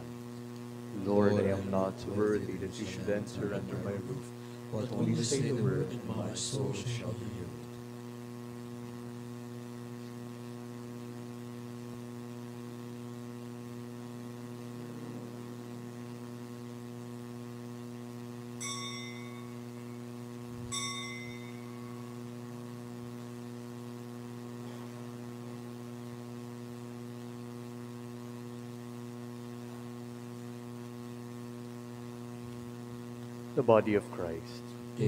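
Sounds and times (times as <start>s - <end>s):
electrical mains hum: 0.0s - 35.0s
ringing metallic clinks: 18.6s - 19.7s, 20.7s - 21.8s.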